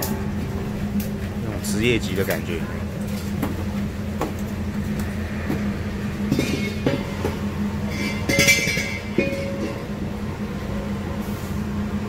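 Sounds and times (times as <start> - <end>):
utensils clinking on metal pots: 6.3 - 7.3, 7.9 - 9.9.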